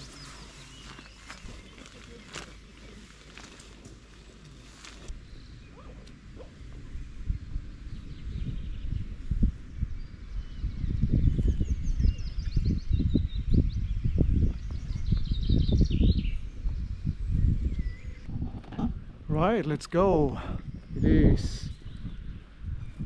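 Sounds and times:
small birds chirping: 0.0s - 23.0s
wind rumble on microphone: 5.0s - 19.7s, 20.3s - 23.0s.

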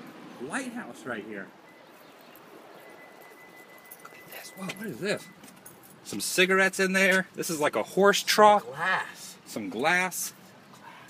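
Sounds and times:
faint outdoor background noise: 0.0s - 11.0s
thin high steady tone: 1.6s - 6.7s.

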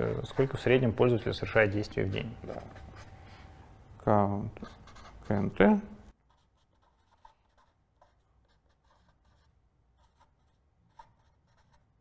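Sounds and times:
pen scratching on paper: 0.0s - 3.2s, 4.6s - 5.5s, 6.2s - 11.9s.

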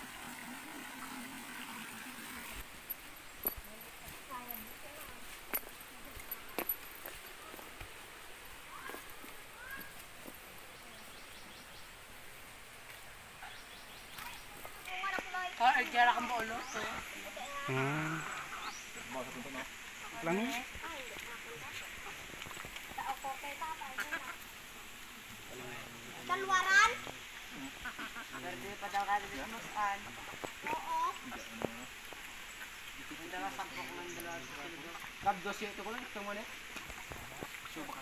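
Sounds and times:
faint outdoor ambience: 0.0s - 38.0s
people's voices: 14.1s - 24.5s.

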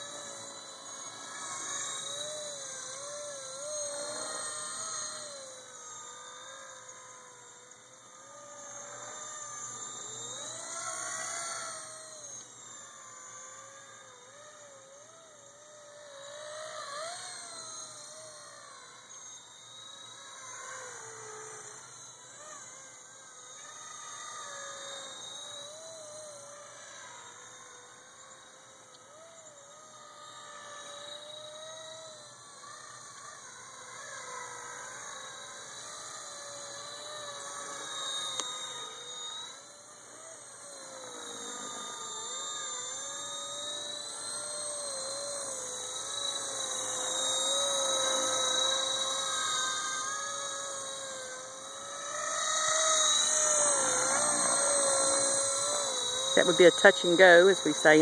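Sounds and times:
rc helicopter electric whine: 0.0s - 58.0s.

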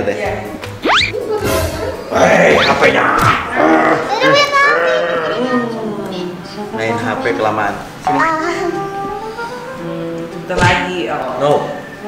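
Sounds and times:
background music: 6.4s - 12.0s.

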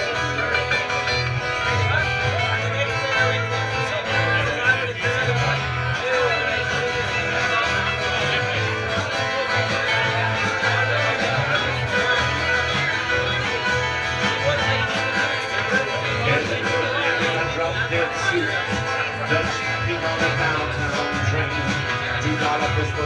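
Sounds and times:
strummed acoustic guitars: 0.0s - 23.0s.

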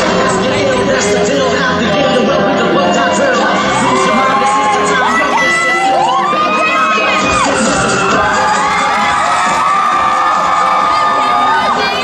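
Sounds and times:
crowd screaming and cheering: 0.0s - 12.0s.

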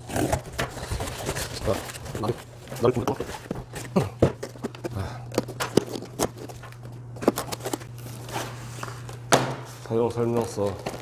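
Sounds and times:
cardboard boxes being handled: 0.0s - 4.9s
steady low hum: 0.0s - 11.0s.

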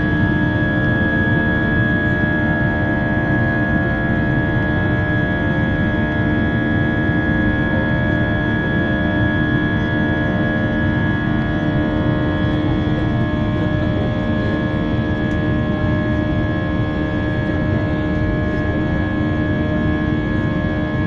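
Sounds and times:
jet engines droning in cabin: 0.0s - 21.0s.

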